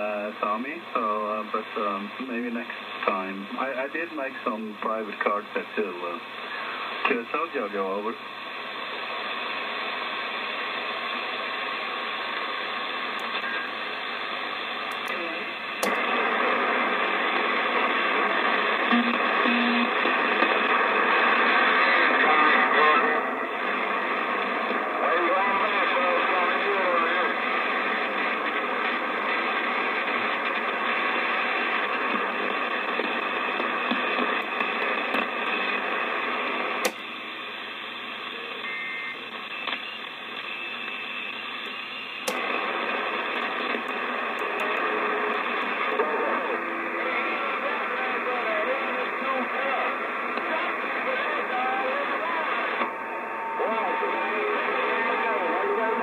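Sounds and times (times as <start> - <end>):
radio static hiss: 0.0 - 56.0.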